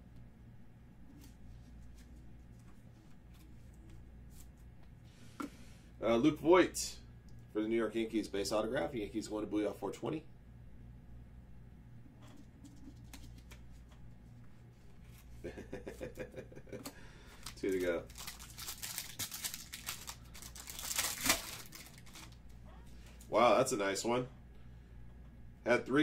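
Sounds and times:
plastic crinkling: 17.3s - 22.6s.

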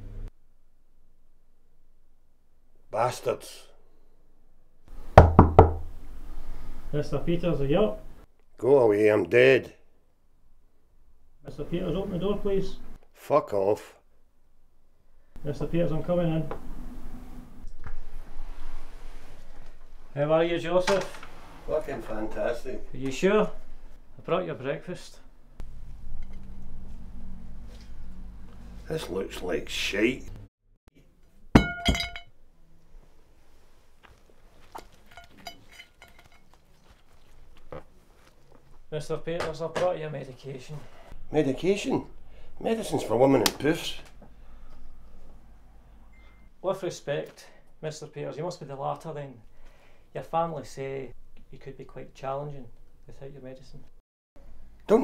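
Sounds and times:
knocks on a door: 5.2s - 5.8s
ceramic plate clink: 31.6s - 32.3s, 34.8s - 36.6s.

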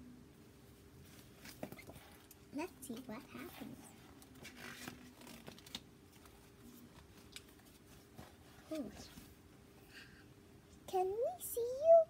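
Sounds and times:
book pages rustling and turning: 1.0s - 9.4s.

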